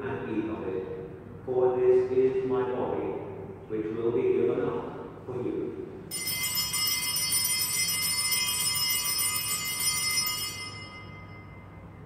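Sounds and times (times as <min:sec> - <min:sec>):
altar bell ringing: 0:06.1 - 0:12.0.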